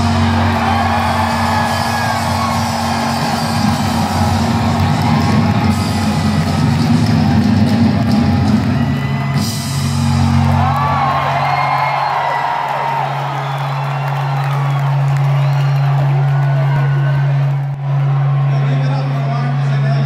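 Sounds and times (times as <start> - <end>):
rock band playing live: 0.0 - 11.4
crowd whooping: 0.0 - 20.0.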